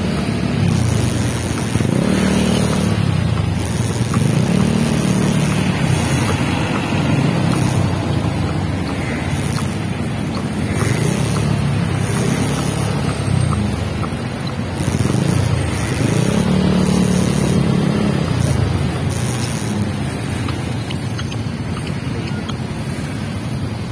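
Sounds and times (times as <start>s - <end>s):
motorcycle engine running: 0.0s - 23.9s
nearby vehicle engines: 0.0s - 23.9s.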